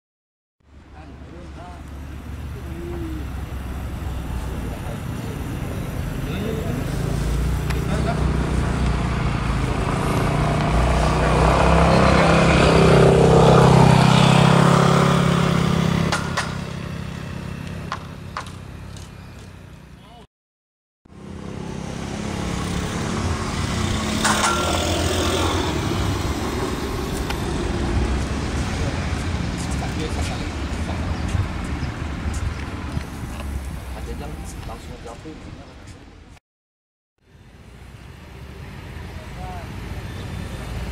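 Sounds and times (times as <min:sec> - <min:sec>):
outdoor background noise: 0:00.6 - 0:20.3, 0:21.1 - 0:36.4, 0:37.2 - 0:40.9
motor vehicle engine: 0:00.7 - 0:20.2, 0:21.1 - 0:35.0.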